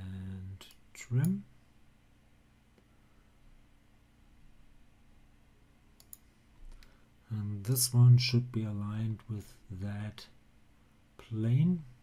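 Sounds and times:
faint low hum: 0.0s - 12.0s
computer mouse clicking: 6.0s - 6.9s.

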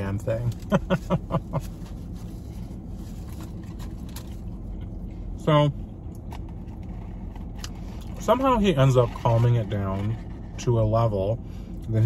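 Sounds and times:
low rumble inside car: 0.0s - 12.0s
person chewing: 6.1s - 8.2s.

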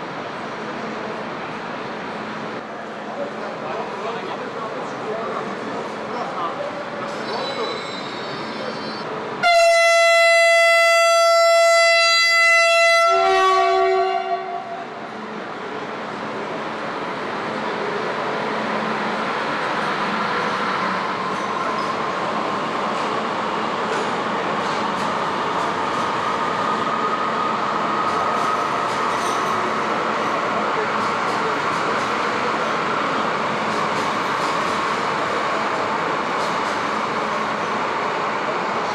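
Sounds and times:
train rumbling as it pulls out: 0.0s - 38.9s
train horn blast: 9.4s - 14.8s.

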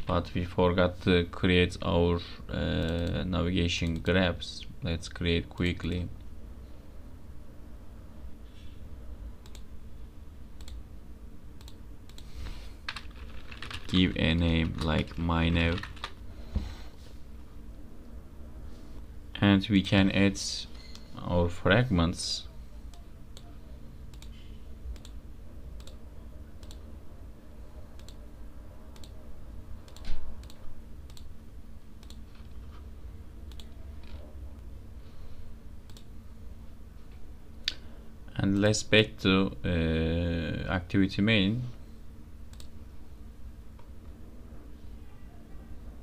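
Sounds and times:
low steady hum: 0.0s - 46.0s
computer mouse clicks: 9.4s - 9.7s, 10.6s - 10.8s, 11.6s - 12.3s, 24.1s - 24.3s, 24.9s - 25.2s, 25.8s - 26.0s, 26.6s - 26.8s, 28.0s - 28.2s, 28.9s - 29.2s, 29.9s - 31.3s, 32.0s - 32.2s, 33.5s - 34.2s, 35.9s - 36.1s, 42.5s - 42.7s.

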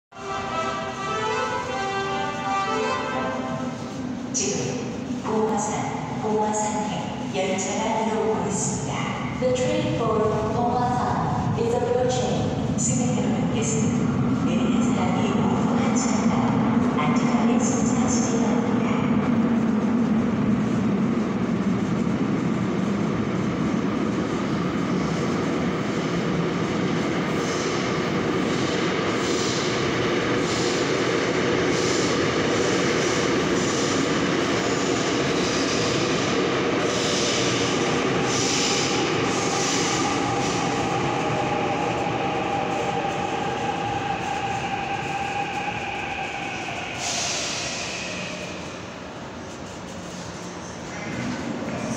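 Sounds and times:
train wheels rumbling on track: 0.2s - 51.9s.

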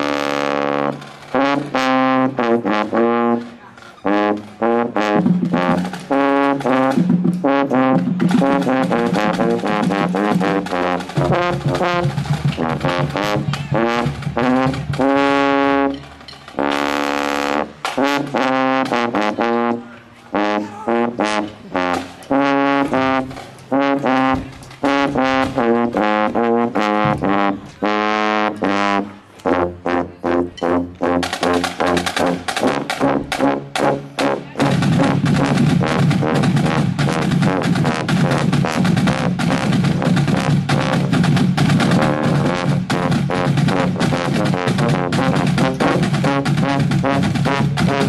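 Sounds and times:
marching tubas playing: 0.0s - 48.0s.

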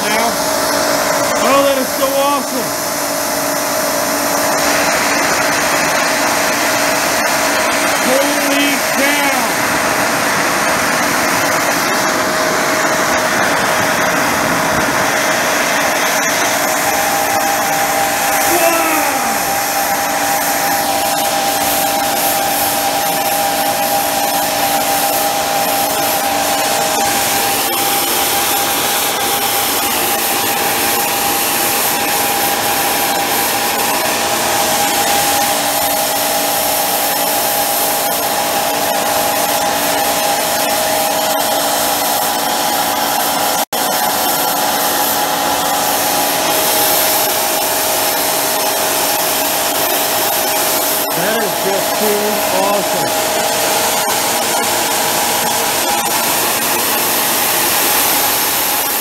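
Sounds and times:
burner roaring with high whine: 0.0s - 59.0s.

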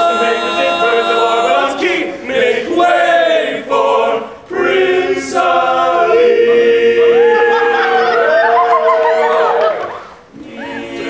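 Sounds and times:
male a cappella harmony singing: 0.0s - 11.0s.

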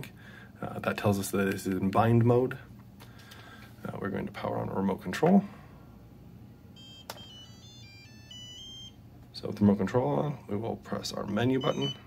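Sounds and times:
electronic startup melody beeps: 6.8s - 9.0s, 11.6s - 12.0s.

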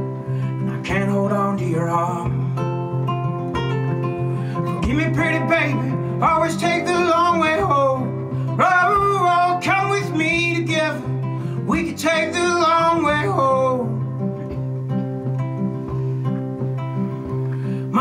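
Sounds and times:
acoustic guitar: 0.0s - 18.0s
man singing: 0.5s - 2.6s, 4.5s - 14.2s, 17.8s - 18.0s.

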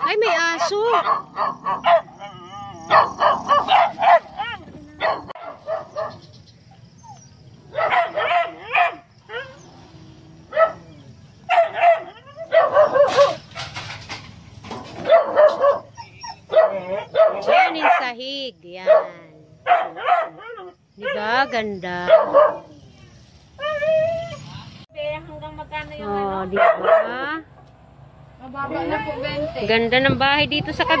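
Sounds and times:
dog barking: 0.0s - 6.2s, 7.7s - 9.6s, 10.5s - 10.9s, 11.5s - 13.7s, 15.0s - 18.2s, 18.8s - 22.8s, 26.5s - 27.4s.

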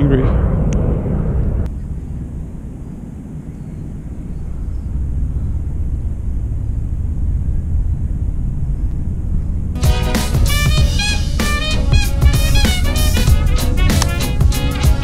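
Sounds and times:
low uneven rumble: 0.0s - 14.6s.

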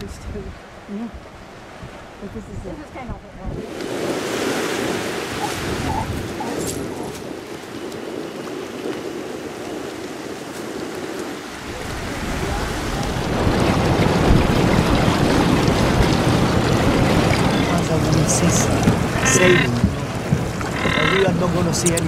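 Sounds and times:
surf washing: 0.0s - 22.0s
water noise from inflatable boat: 0.0s - 22.0s
wind rushing over microphone: 0.0s - 22.0s.

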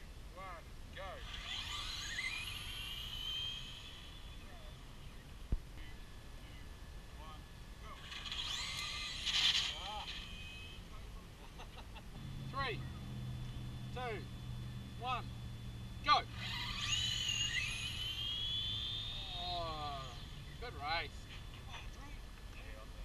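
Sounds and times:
steady low hum: 0.0s - 23.0s
electric motors whining: 1.0s - 23.0s.

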